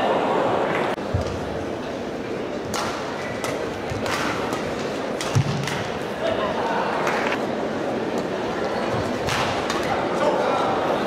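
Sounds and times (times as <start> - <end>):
arena crowd noise: 0.0 - 11.0
rackets striking shuttlecock: 2.7 - 6.0.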